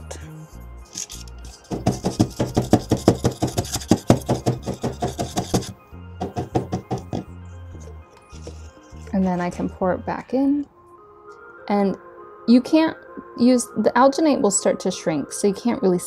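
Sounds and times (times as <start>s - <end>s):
plastic cup tapped on tabletop: 1.8s - 7.3s.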